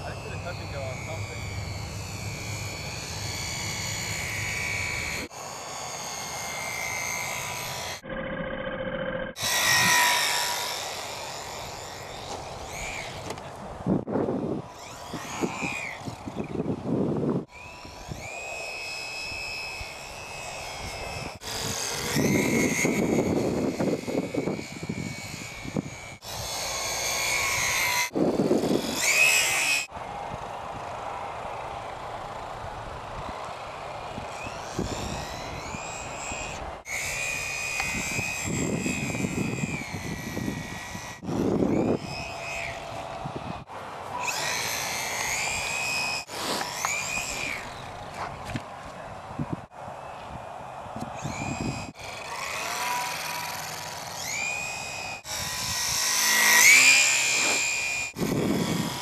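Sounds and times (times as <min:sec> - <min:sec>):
model plane motor whining: 0:00.0 - 0:59.0.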